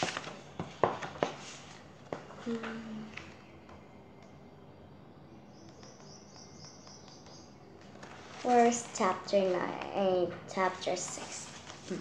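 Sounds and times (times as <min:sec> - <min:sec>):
paperback pages being turned: 0:00.0 - 0:01.8, 0:07.8 - 0:10.0, 0:11.0 - 0:12.0.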